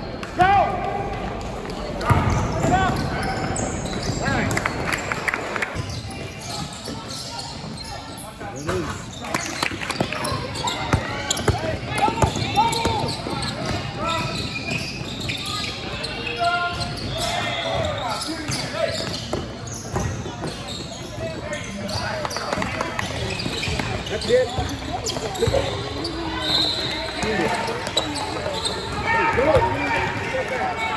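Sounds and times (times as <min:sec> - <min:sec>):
basketball bouncing on court: 0:01.1 - 0:04.8, 0:09.9 - 0:15.2.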